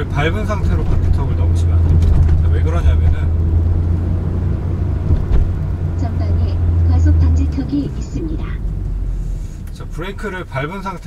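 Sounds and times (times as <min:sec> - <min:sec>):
car engine and road drone: 0:00.0 - 0:11.0
short thump: 0:05.1 - 0:05.6.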